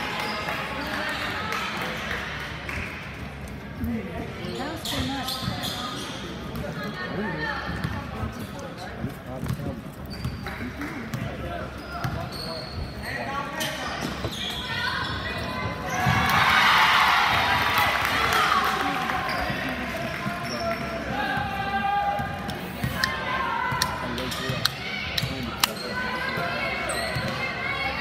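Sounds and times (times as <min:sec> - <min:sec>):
voices of players and spectators: 0:00.0 - 0:28.0.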